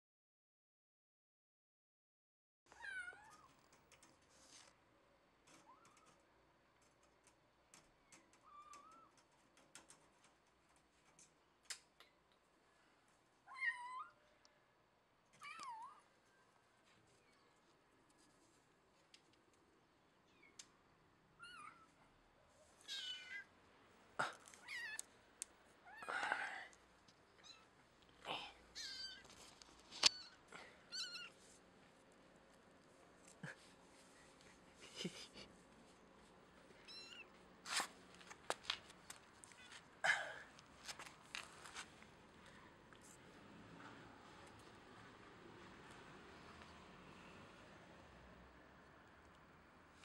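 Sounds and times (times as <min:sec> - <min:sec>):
kitten meowing: 0:28.8 - 0:29.2, 0:30.1 - 0:31.4, 0:36.8 - 0:37.3.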